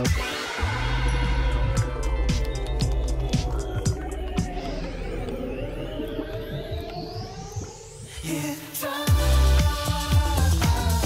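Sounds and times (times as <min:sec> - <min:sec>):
background music: 0:00.0 - 0:06.9, 0:08.2 - 0:11.0
rising electronic whoosh: 0:00.3 - 0:08.3.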